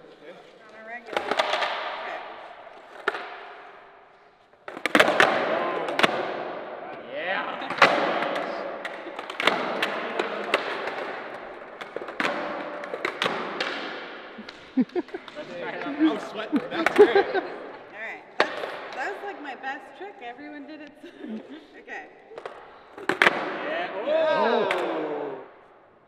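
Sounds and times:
skateboards clacking on concrete: 1.0s - 2.2s, 4.6s - 6.3s, 7.7s - 16.0s, 18.4s - 19.2s, 22.4s - 23.5s.

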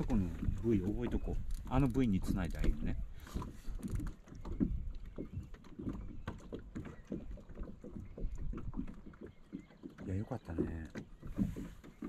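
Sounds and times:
waves lapping against boat hull: 0.0s - 12.0s.

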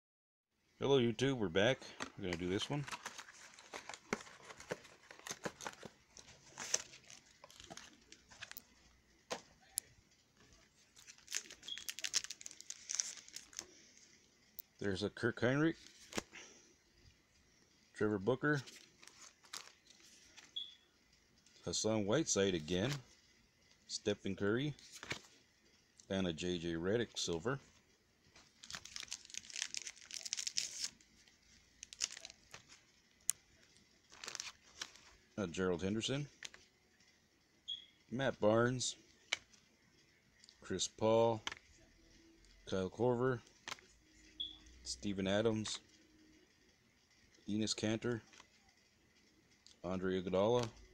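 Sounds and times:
plastic wrappers crinkling and tearing: 2.0s - 8.8s, 10.5s - 14.1s, 18.7s - 20.5s, 28.4s - 35.2s.

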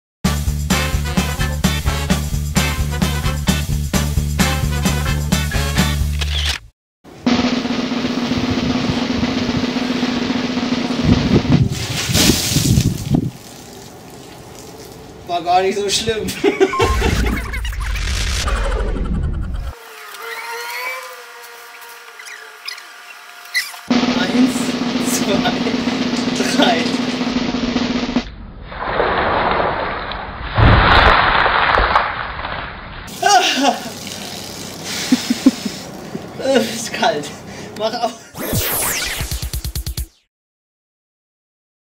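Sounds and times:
swing music: 0.2s - 6.2s, 23.9s - 28.2s
snare drum roll: 7.2s - 11.8s, 23.9s - 28.3s
ice water pouring and splashing: 11.7s - 15.2s, 30.6s - 35.5s.

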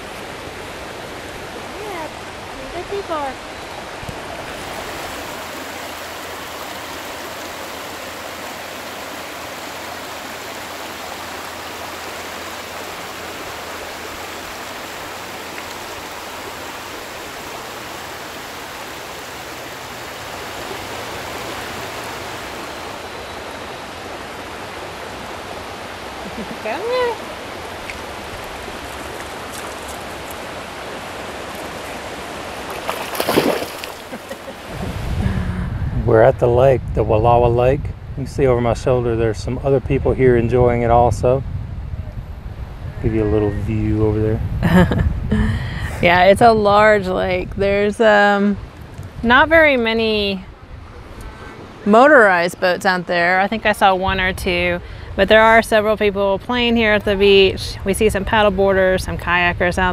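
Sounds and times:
creek water over stones: 0.0s - 35.4s.

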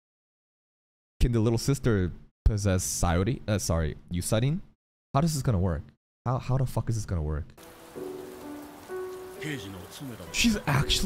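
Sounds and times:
steady rain hiss: 7.6s - 11.0s.

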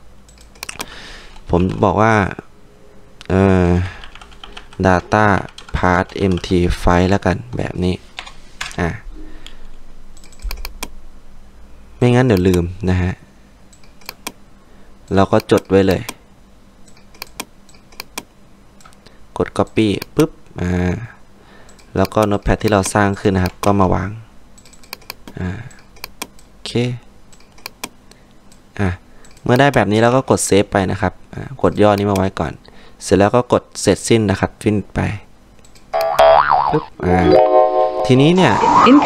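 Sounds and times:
computer keyboard keystrokes: 0.3s - 0.9s, 4.0s - 6.6s, 10.2s - 10.9s, 16.9s - 19.0s, 24.6s - 26.5s, 27.3s - 28.6s.

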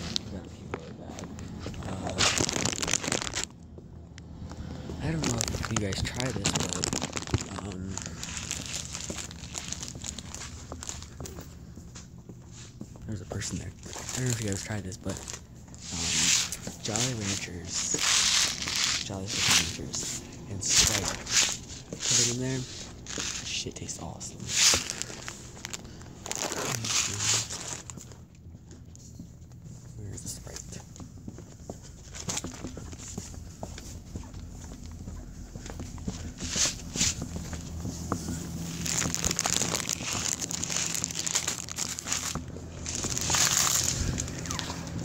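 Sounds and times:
phone handling crinkling and rustling: 0.0s - 29.6s, 30.4s - 45.0s
low steady hum: 0.0s - 45.0s.

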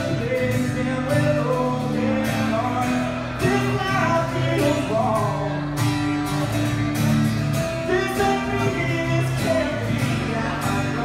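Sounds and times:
man singing: 0.0s - 5.8s, 7.7s - 11.0s
strummed acoustic guitar: 0.0s - 11.0s.

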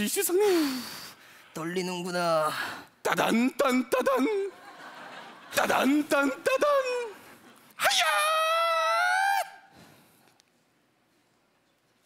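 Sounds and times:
man's high-pitched shout: 7.8s - 9.7s.

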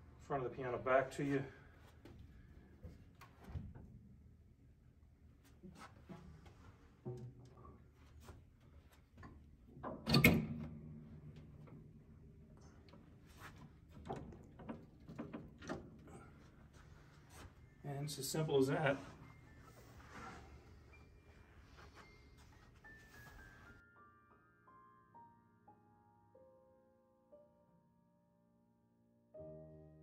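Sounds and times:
knocks and clunks of piano: 9.6s - 17.0s.

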